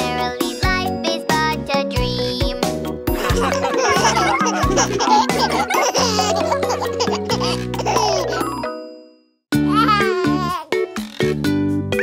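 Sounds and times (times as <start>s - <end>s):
children's song backing music: 0.0s - 8.4s
cartoon baby laughing and giggling: 3.1s - 8.8s, 9.6s - 11.3s.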